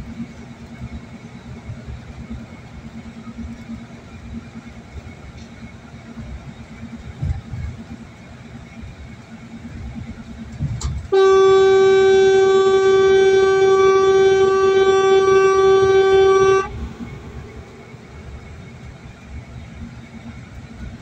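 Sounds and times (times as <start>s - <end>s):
car road noise: 0.0s - 21.0s
vehicle horn blast: 11.0s - 17.1s.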